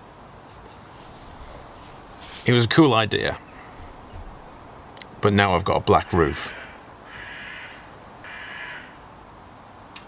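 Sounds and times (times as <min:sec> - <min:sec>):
bird harsh calls: 0:03.2 - 0:04.8, 0:05.9 - 0:09.0.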